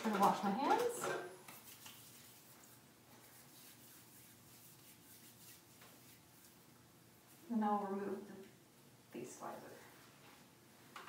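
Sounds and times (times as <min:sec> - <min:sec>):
hands rubbing together: 0:01.5 - 0:06.7.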